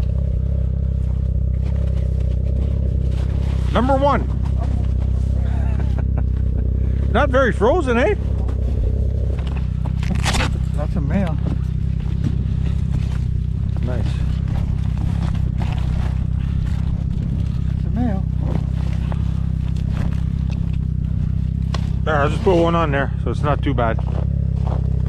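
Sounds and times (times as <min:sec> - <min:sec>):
snowmobile engine idling: 0:00.0 - 0:25.0.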